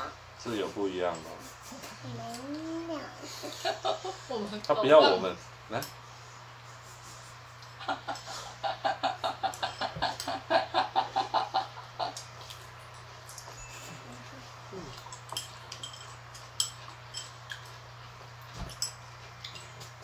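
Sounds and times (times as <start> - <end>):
steady low hum: 0.0 - 20.0
woman laughing loudly: 7.8 - 12.2
chopsticks clicking on bowls: 14.9 - 17.8.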